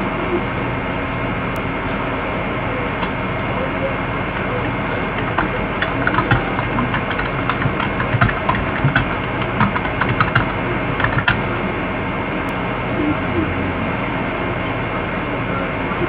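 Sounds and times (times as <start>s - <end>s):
low hum and hiss: 0.0s - 16.0s
light clicks and taps: 5.2s - 11.4s.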